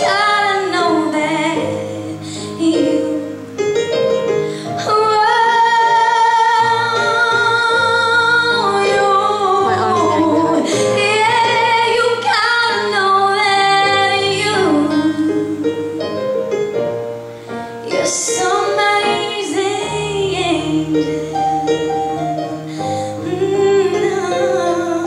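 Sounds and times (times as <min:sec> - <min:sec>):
woman singing into microphone: 0:00.0 - 0:03.6, 0:04.5 - 0:16.3, 0:17.8 - 0:25.0
instrumental accompaniment: 0:00.0 - 0:25.0.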